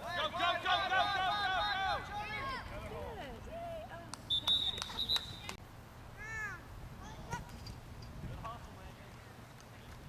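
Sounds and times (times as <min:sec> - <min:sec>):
referee's whistle: 0:04.3 - 0:05.6.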